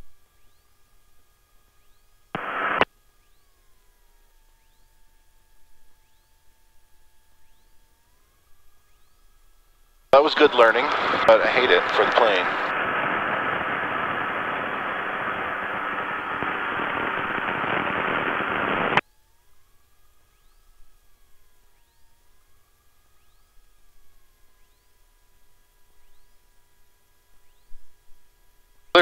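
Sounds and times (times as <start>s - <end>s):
faint wavering whine: 0.0s - 29.0s
aircraft engine and propeller running: 0.3s - 29.0s.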